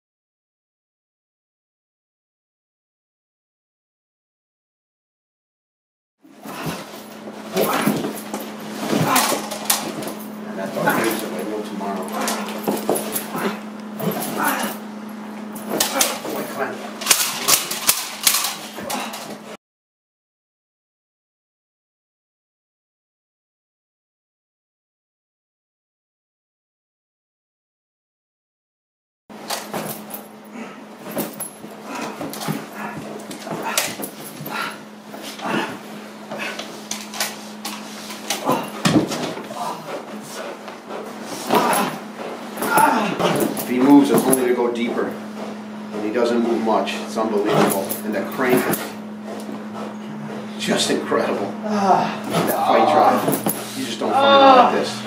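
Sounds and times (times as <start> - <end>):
steady low hum: 6.2 - 19.6, 29.3 - 55.0
dog growling: 8.8 - 14.9, 31.8 - 36.7, 38.3 - 40.6, 41.3 - 42.0, 42.6 - 46.6
dog sounds: 10.7 - 14.8, 31.9 - 36.8
sharp slaps and knocks on bite suit: 15.6 - 19.4.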